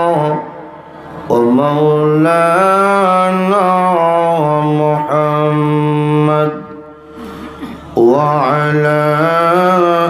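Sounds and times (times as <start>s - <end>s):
man chanting: 0.0s - 10.0s.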